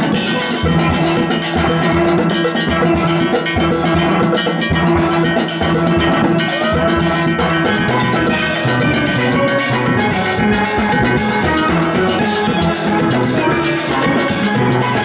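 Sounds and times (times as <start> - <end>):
drums: 0.0 - 15.0
metal scraper percussion: 0.0 - 15.0
steel pans playing tune: 0.0 - 15.0.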